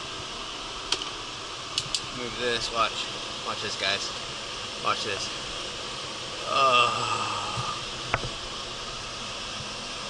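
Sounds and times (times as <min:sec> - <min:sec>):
heaters and fans blowing air: 0:00.0 - 0:10.0.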